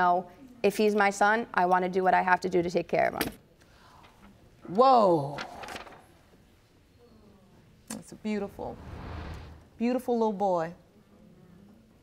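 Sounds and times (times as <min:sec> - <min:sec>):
short sharp sound: 0:08.4 - 0:09.8.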